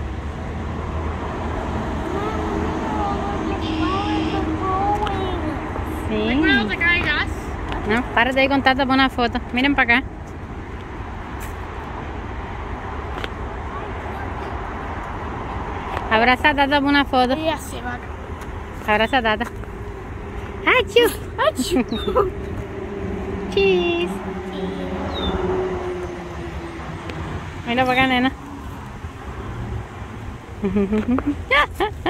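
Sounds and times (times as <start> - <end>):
road traffic noise: 0.0 - 32.0.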